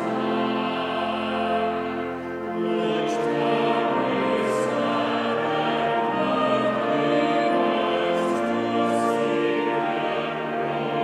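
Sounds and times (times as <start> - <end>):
church choir singing in harmony: 0.0 - 11.0.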